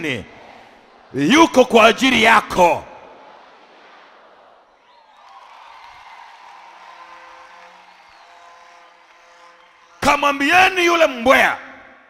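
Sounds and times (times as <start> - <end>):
congregation calling out: 0.0 - 4.7
congregation clapping: 2.2 - 11.2.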